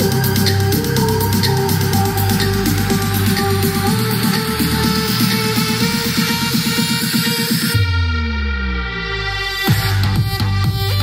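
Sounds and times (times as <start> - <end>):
deep bass with falling glides: 0.0 - 11.0
electronic dance music: 0.0 - 11.0.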